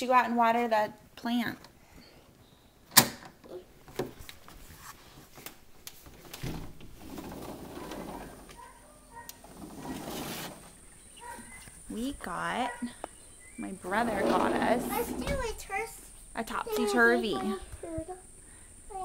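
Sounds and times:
door latch clicks: 2.9s - 3.4s
door rustling as pushed open: 6.0s - 8.7s, 9.3s - 11.6s, 14.0s - 15.6s.

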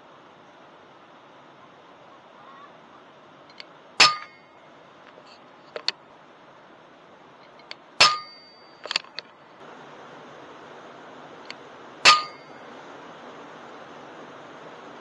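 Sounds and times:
air rifle shots: 4.0s - 4.4s.

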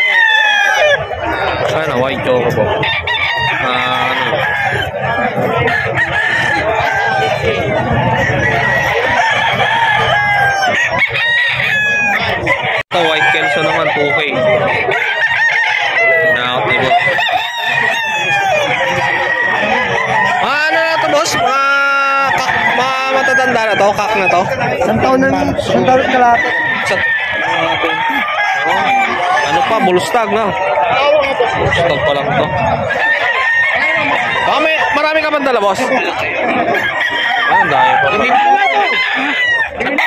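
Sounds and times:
chickens clucking: 0.0s - 40.0s
people talking: 0.0s - 40.0s
roosters crowing: 0.0s - 40.0s.

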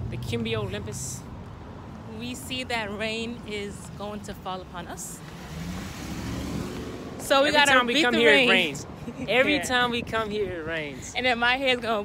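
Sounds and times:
van driving past: 5.2s - 9.0s.

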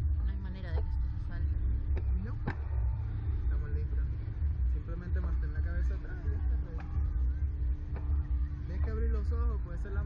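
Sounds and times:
ride machinery rumble and hum: 0.0s - 10.0s.

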